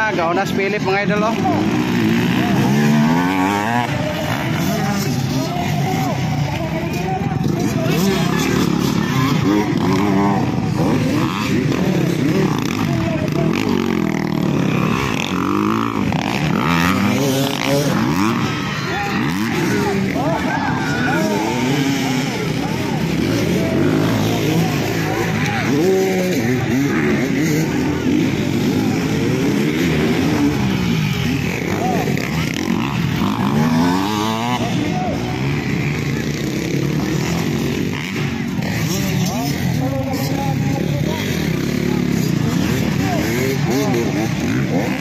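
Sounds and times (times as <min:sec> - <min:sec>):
dirt bike engines revving: 0:00.0 - 0:45.0.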